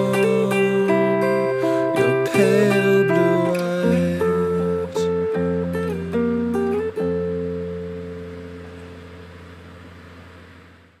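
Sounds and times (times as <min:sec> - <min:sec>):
guitar chord ringing: 0:00.0 - 0:11.0.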